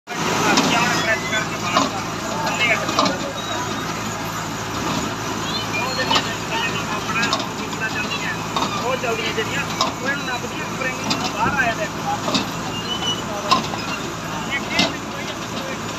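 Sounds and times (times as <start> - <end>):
machine engine hum: 0.1 - 15.9.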